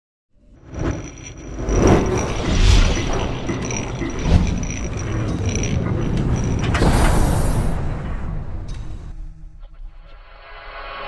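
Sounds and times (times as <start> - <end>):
mechanical gears clanking: 0.6 - 9.1.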